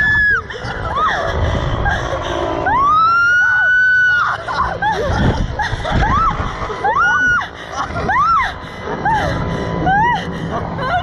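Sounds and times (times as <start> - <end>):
whooping cries: 0.0 - 2.0, 2.6 - 11.0
riders screaming: 0.0 - 10.2
wind rumble on microphone: 0.0 - 11.0.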